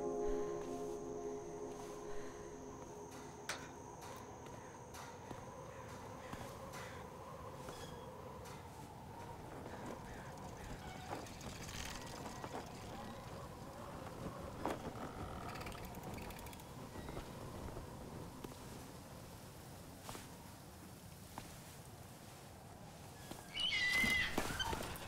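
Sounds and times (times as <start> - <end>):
small clicks and creaks: 7.7 - 17.8.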